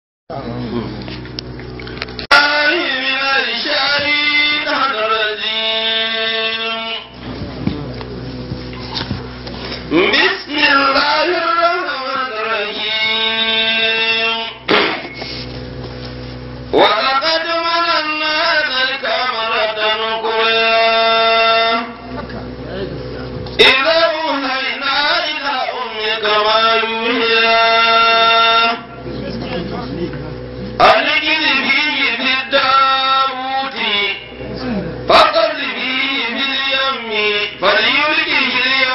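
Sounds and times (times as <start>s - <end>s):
man chanting: 2.3s - 8.0s, 9.9s - 14.7s, 16.7s - 29.7s, 30.3s - 38.9s
person chanting: 35.1s - 38.9s.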